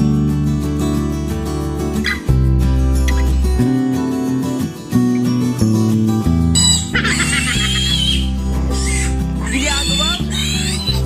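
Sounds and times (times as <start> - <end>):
guitar music: 0.0 - 11.0
piglet squealing: 6.6 - 11.0.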